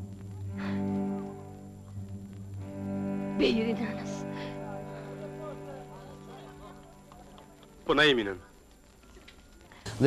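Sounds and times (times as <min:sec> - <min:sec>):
low bowed strings: 0:00.0 - 0:07.0.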